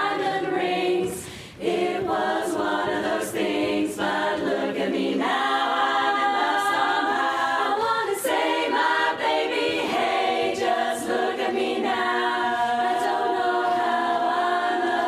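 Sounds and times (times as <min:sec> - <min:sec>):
women's chorus singing a cappella: 0:00.0 - 0:15.0.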